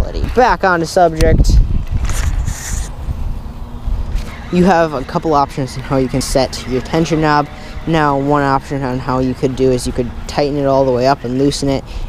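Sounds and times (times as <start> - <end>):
wind rumble on microphone: 0.0 - 12.0
camera handling noise: 1.8 - 3.0.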